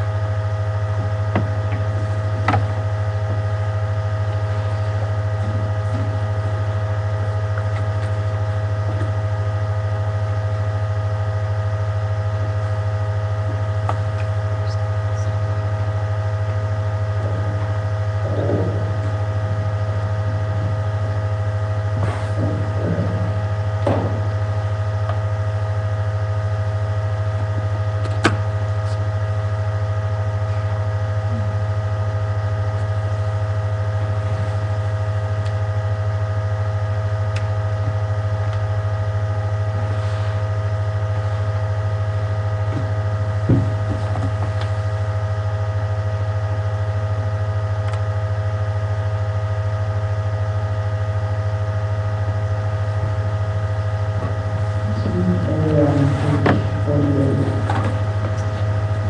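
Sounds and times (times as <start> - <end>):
low hum with higher tones: 0.0 - 59.0
person speaking: 54.7 - 58.6.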